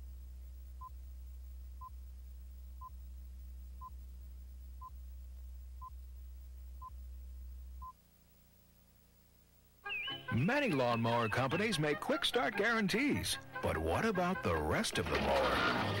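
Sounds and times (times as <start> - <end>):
steady low hum: 0.0 - 9.9.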